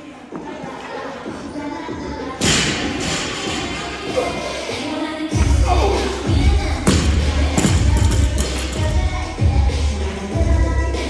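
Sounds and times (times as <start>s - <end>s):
background music: 0.0s - 11.0s
heavy thud echoing in hall: 6.3s - 8.9s.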